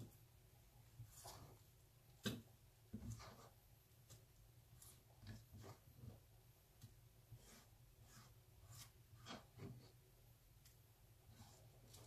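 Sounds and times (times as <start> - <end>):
fingertips scraping a wooden board: 7.3 - 10.0.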